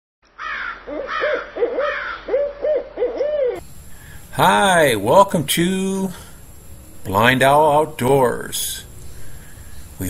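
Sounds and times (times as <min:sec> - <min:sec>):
owl hooting: 0:00.4 - 0:04.1.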